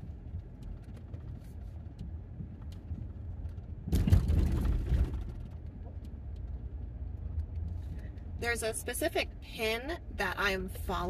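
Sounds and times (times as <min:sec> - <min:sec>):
rough road noise: 0:00.0 - 0:11.0
vehicle engine and tyres rumbling: 0:00.0 - 0:11.0.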